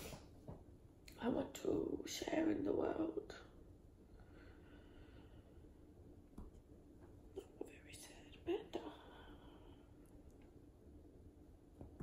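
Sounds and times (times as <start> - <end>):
woman whispering: 7.4 - 9.8.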